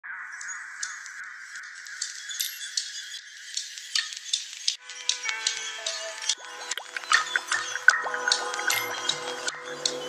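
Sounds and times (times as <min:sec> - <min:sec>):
fluttering ambient texture: 0:00.1 - 0:10.0.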